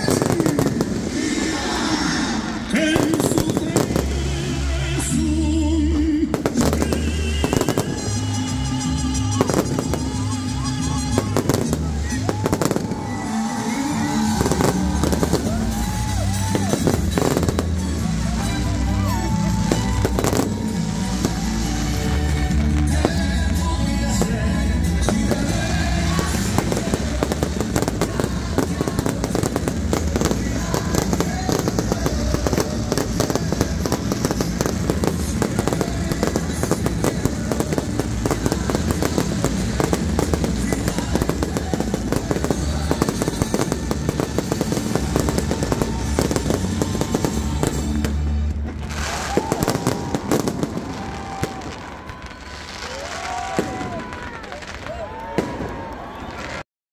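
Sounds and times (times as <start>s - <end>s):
fireworks crackles and bangs: 0.0s - 56.6s
fireworks whistles: 6.4s - 23.3s, 24.9s - 56.6s.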